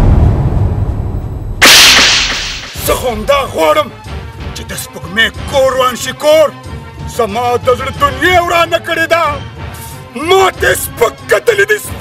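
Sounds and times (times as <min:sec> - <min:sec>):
whip-like slap sound effect: 0:01.6 - 0:03.0.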